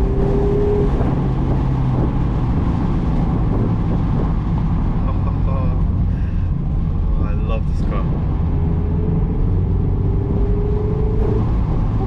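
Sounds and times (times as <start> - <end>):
car engine humming: 0.0 - 12.0
road noise: 0.0 - 12.0
wind noise: 0.0 - 12.0.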